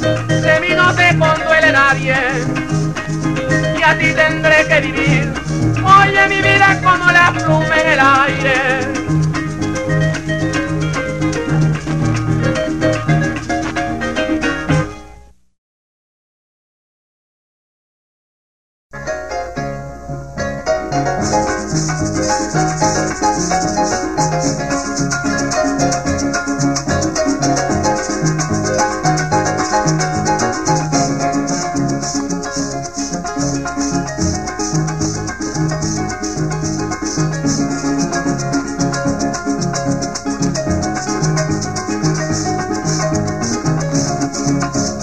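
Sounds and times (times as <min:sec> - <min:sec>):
harp plucking a melody: 0:00.0 - 0:15.2, 0:19.0 - 0:45.0
maracas: 0:00.0 - 0:15.2, 0:20.4 - 0:45.0.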